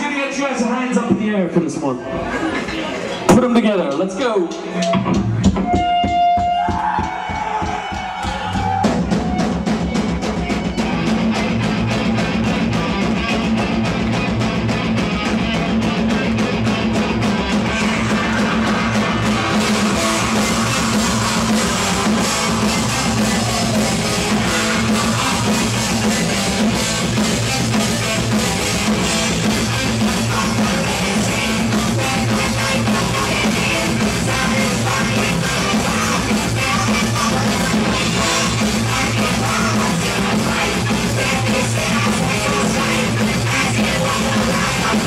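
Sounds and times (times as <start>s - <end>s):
heavy metal band playing live: 2.3s - 45.0s.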